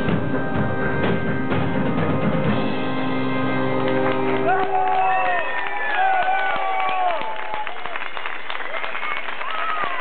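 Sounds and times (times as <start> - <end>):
live band playing: 0.0 - 5.6.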